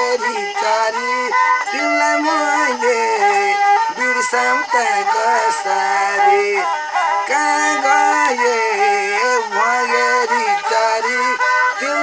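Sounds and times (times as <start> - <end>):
bowed fiddle folk melody: 0.0 - 12.0.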